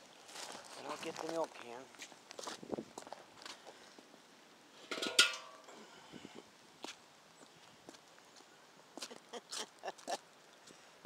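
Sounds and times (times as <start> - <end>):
metal milk can clanking: 4.8 - 5.6.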